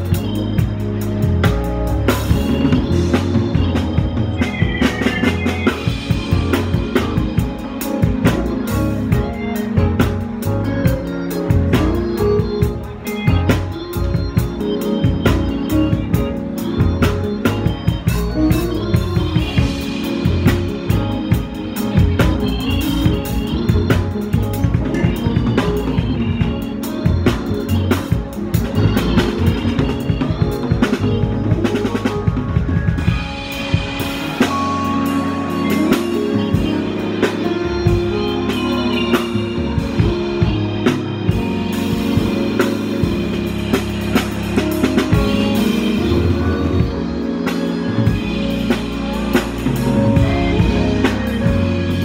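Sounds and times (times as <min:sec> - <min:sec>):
drum kit playing: 0:00.0 - 0:52.0
keyboard bass: 0:00.0 - 0:52.0
organ chords: 0:00.0 - 0:52.0.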